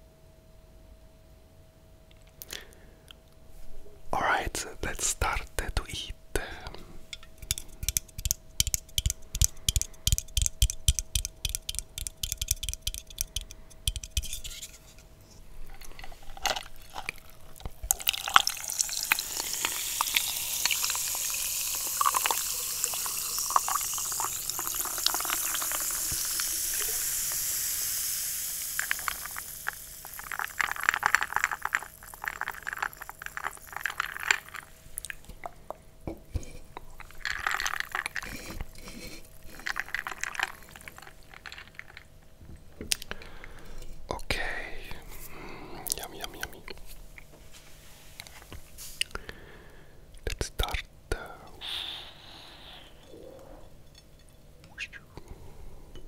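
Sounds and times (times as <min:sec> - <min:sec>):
clicks and taps: 0:06.6 - 0:14.4
soda fizzing over ice in glass: 0:16.3 - 0:34.8, 0:37.0 - 0:42.1.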